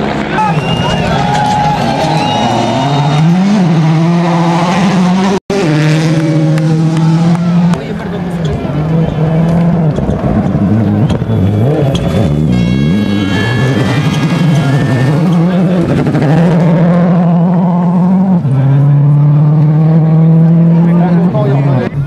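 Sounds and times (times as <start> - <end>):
rally car engines revving: 0.0 - 22.0.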